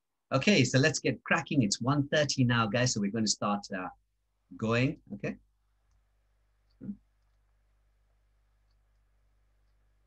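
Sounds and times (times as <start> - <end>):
man speaking over video call: 0.3 - 5.5.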